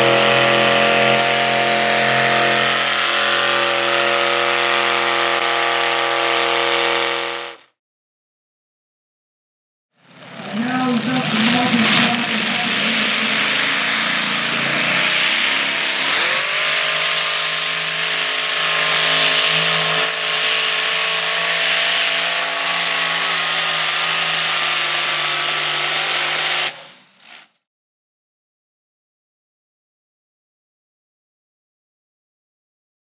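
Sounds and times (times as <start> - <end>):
tractor engine at full throttle: 0.0 - 7.6, 10.0 - 27.6.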